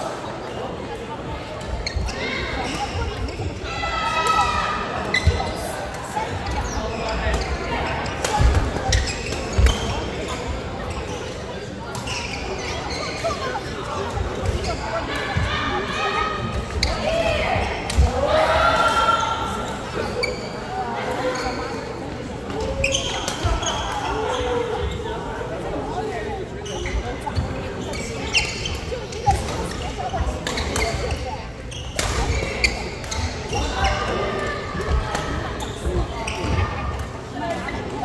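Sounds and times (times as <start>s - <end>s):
voices in a hall: 0.0s - 38.0s.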